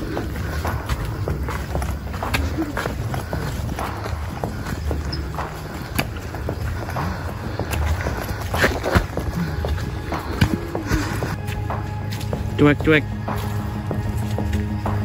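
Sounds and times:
footsteps on muddy dirt trail: 0:00.0 - 0:15.0.

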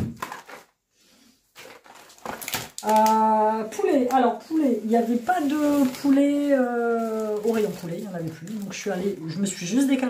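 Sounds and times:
packages rustling: 0:00.0 - 0:00.8, 0:01.4 - 0:10.0.

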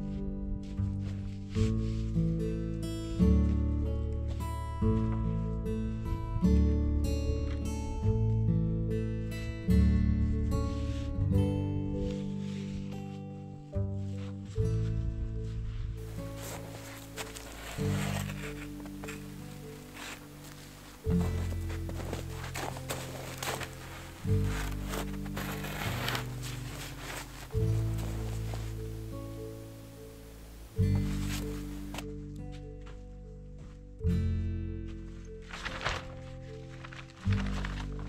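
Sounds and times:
rustling noise: 0:00.0 - 0:06.3, 0:10.2 - 0:34.0, 0:34.8 - 0:38.0
slow plucked melody: 0:00.0 - 0:38.0.

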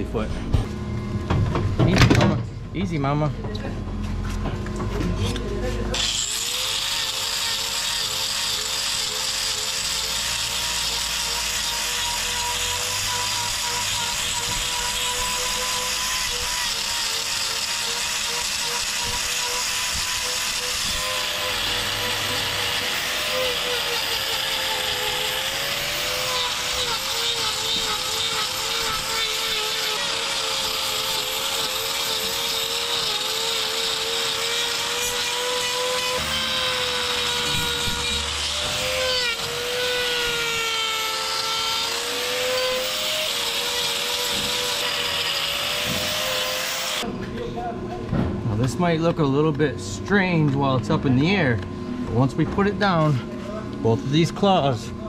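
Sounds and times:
angle grinder motor whine: 0:04.2 - 0:47.2.

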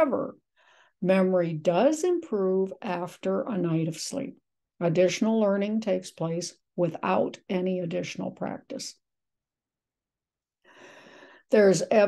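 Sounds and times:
woman breathing in softly: 0:00.5 - 0:01.0, 0:10.6 - 0:11.5.

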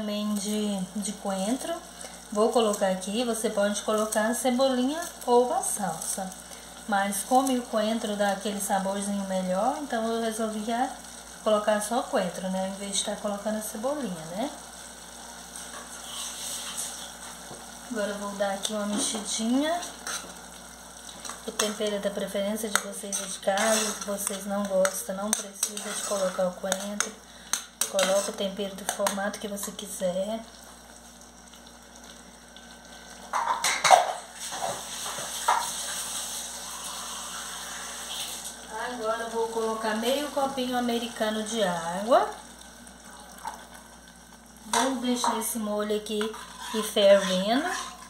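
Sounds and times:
sauce bubbling in a pot: 0:00.9 - 0:38.8, 0:39.9 - 0:48.0.

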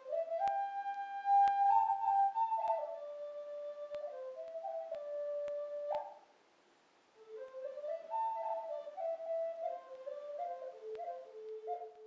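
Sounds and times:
flute holding notes: 0:00.0 - 0:06.3, 0:07.2 - 0:12.0.

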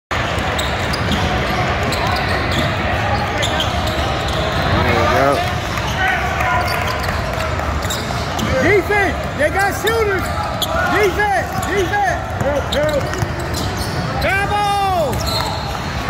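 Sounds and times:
crowd chatter: 0:00.1 - 0:16.0.

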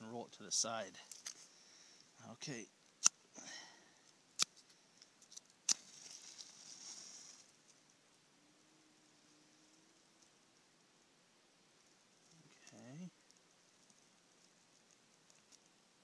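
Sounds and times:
match flaring with a hiss: 0:04.3 - 0:07.6
match strikes on matchbox: 0:04.4 - 0:07.5.

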